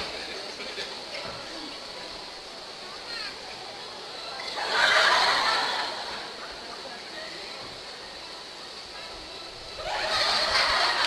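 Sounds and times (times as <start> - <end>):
audience murmur: 0.0 - 11.0.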